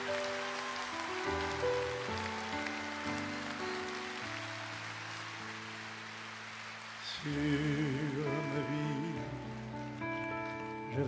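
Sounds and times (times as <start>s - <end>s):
grand piano playing slow chords: 0.0s - 11.0s.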